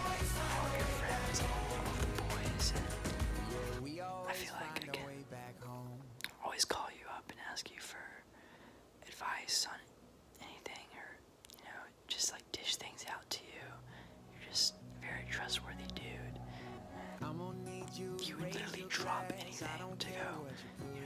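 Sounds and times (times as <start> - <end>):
soft background music: 0.0 - 8.1, 12.1 - 21.0
young man whispering: 0.4 - 5.2, 5.8 - 8.3, 9.0 - 21.0.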